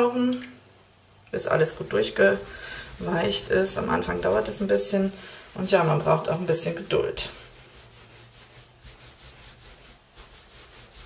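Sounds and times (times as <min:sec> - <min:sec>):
hands rubbing wet wool on towel: 0:01.4 - 0:11.0.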